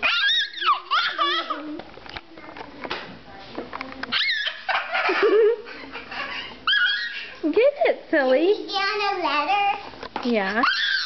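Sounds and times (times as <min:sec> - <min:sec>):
children squealing: 0:00.0 - 0:01.6, 0:04.1 - 0:04.9, 0:06.3 - 0:07.4, 0:10.6 - 0:11.0.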